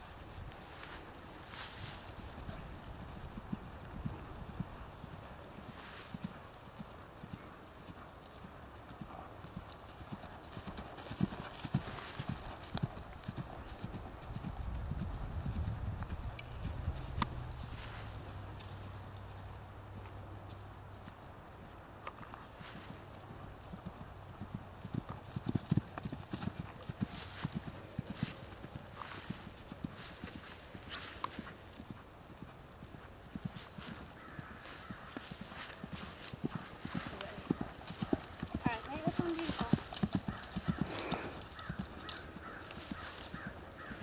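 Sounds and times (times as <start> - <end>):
horse hooves cantering on grass: 0.0 - 44.0.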